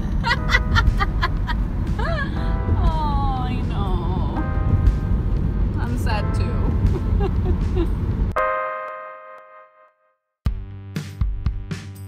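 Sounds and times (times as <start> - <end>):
car road noise rumble: 0.0 - 8.4.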